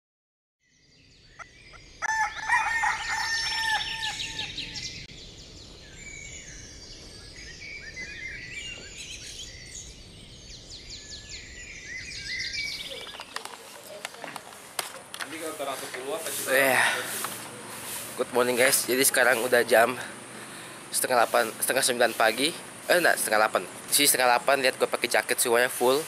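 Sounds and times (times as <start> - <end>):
small birds chirping: 0.6 - 26.0
rooster crowing: 2.0 - 4.9.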